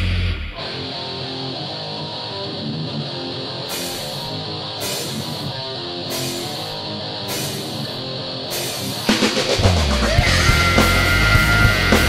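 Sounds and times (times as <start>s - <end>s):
electric guitar riff: 0.0s - 12.0s
heavy metal band: 0.0s - 12.0s
cymbal strikes: 3.7s - 9.6s.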